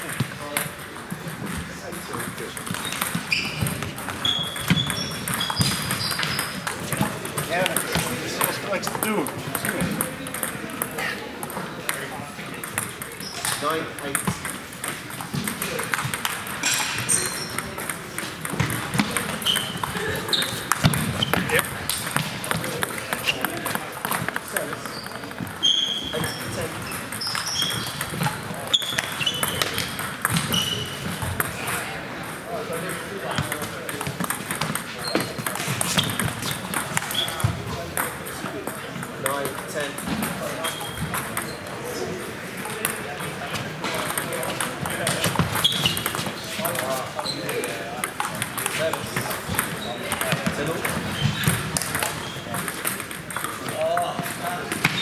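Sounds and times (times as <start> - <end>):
murmur of voices: 0.0 - 55.0
table tennis balls clicking: 0.0 - 55.0.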